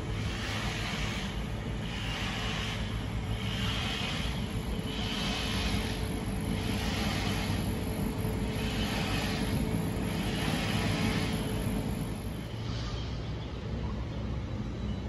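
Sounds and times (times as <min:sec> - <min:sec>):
high pulsing hiss: 0:00.0 - 0:14.8.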